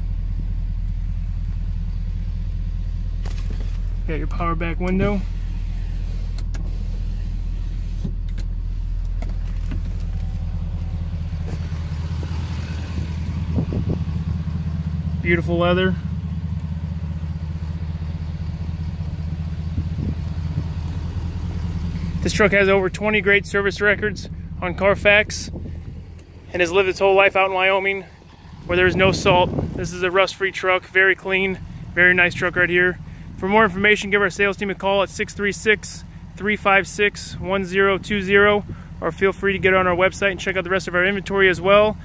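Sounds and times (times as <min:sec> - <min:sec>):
diesel engine idling: 0:00.0 - 0:42.0.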